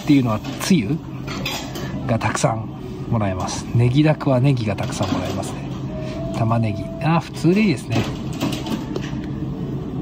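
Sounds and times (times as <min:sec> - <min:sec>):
restaurant room hum: 0:00.0 - 0:10.0.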